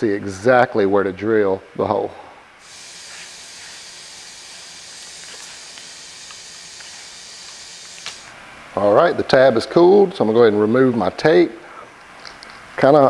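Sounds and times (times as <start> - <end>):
hiss of blowing air: 2.6 - 8.3.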